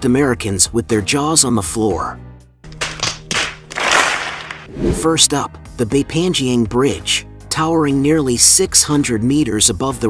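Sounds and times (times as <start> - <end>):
faint background music: 0.0 - 2.4, 4.7 - 10.0
crowd applause: 3.5 - 4.7.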